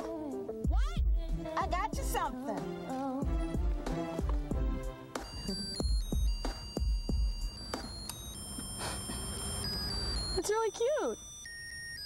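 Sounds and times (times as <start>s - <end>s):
low electronic beat: 0.6s - 2.4s, 3.2s - 8.0s
toy beeping melody: 5.2s - 12.0s.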